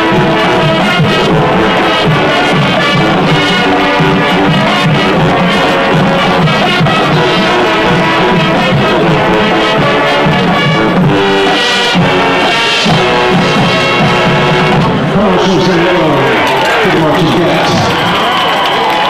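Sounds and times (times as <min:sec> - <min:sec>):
marching band playing: 0:00.0 - 0:19.0.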